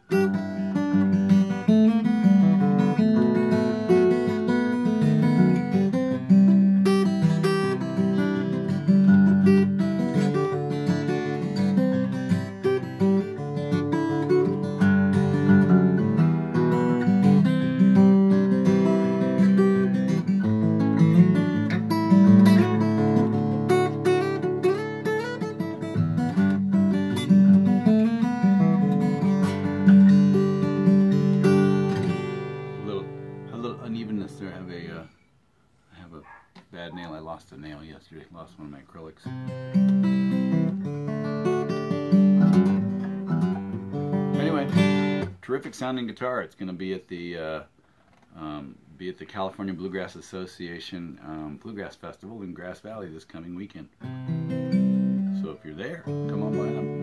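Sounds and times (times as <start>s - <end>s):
acoustic guitar fingerstyle: 0.0s - 35.4s, 36.1s - 57.0s.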